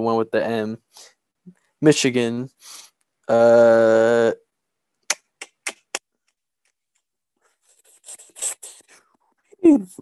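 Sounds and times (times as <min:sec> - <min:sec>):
soft rubbing hiss: 0:07.4 - 0:09.1.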